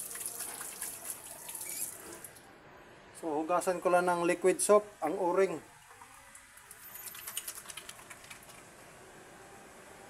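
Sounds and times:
wet clicks and squelches: 0:06.6 - 0:08.7
wet hands rubbing rubber ring: 0:06.8 - 0:08.5.

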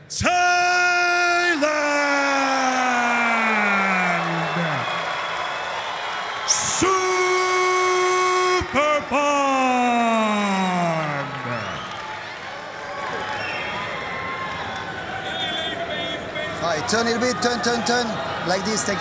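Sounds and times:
announcer's amplified voice: 0:00.0 - 0:02.7, 0:06.5 - 0:11.8.

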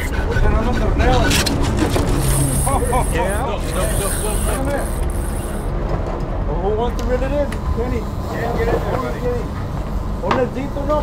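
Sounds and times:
indistinct voices: 0:00.0 - 0:05.7
boat engine rumble: 0:00.0 - 0:06.6.

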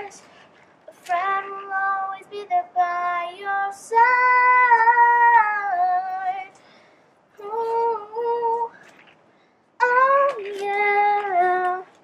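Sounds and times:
girl singing unaccompanied: 0:00.0 - 0:06.6, 0:07.3 - 0:08.9, 0:09.8 - 0:12.0.

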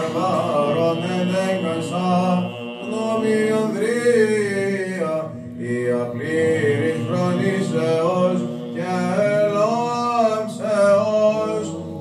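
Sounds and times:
held low drone note: 0:00.0 - 0:11.4
person chanting ornamented melody: 0:00.0 - 0:12.0.

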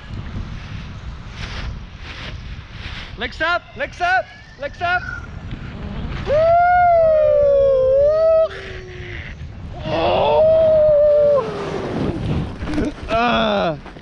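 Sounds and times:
sliding on snow: 0:00.0 - 0:07.6, 0:08.6 - 0:14.0
wind noise on microphone: 0:00.0 - 0:14.0
person whooping: 0:06.2 - 0:09.2, 0:09.8 - 0:12.2.

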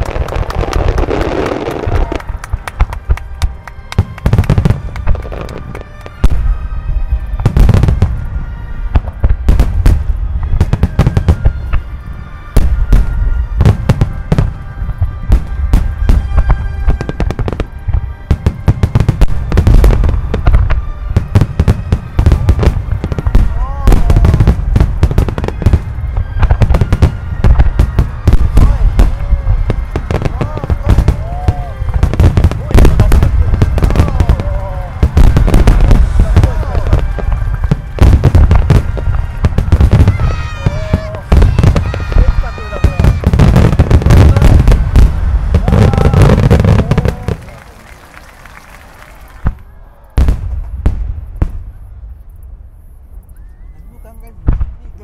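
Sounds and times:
music playing: 0:00.0 - 0:49.5
fireworks booms and cracks: 0:00.0 - 0:53.0, 0:54.2 - 0:55.0.

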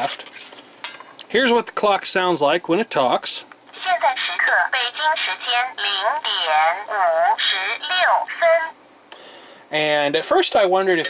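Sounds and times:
electronic voice announcing time: 0:03.8 - 0:08.8.

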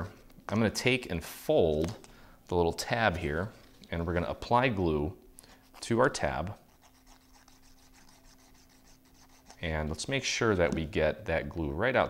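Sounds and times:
glue bottle nozzle rubbing paper: 0:05.5 - 0:10.0.

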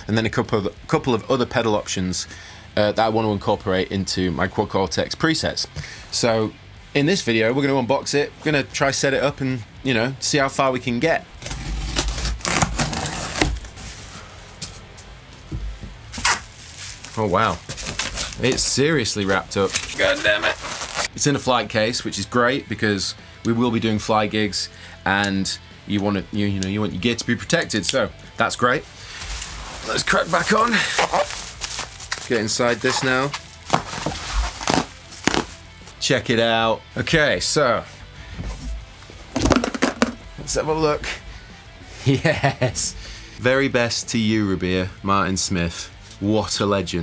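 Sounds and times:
packing tape ripping: 0:11.4 - 0:13.8, 0:16.1 - 0:21.1, 0:29.2 - 0:35.7
cardboard box tearing and rustling: 0:11.4 - 0:14.0, 0:16.2 - 0:21.1, 0:29.2 - 0:35.6
bubble wrap crinkling: 0:11.4 - 0:14.2, 0:16.1 - 0:21.1, 0:29.0 - 0:36.0.

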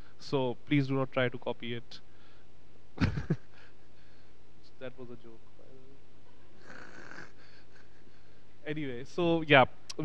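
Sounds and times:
breath into a microphone: 0:02.1 - 0:02.6, 0:03.6 - 0:04.4.

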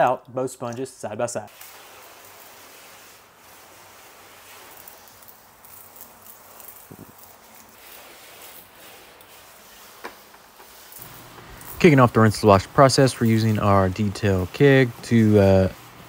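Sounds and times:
spray gun hissing: 0:01.4 - 0:16.0.

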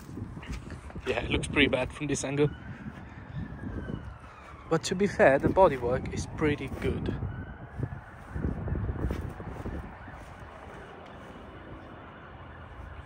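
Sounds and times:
footsteps: 0:08.1 - 0:12.0.

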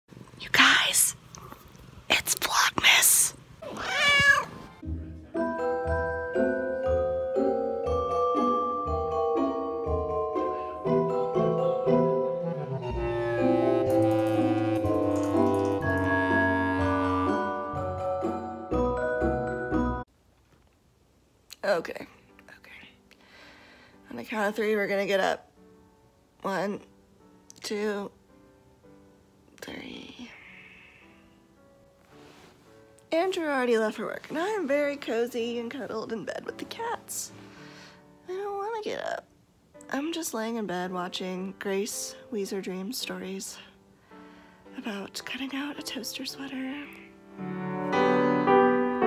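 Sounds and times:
person whispering: 0:00.4 - 0:03.4, 0:22.5 - 0:23.0.

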